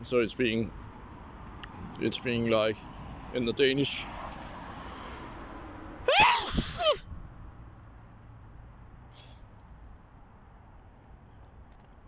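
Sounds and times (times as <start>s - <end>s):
man sneezing loudly: 6.1s - 7.0s.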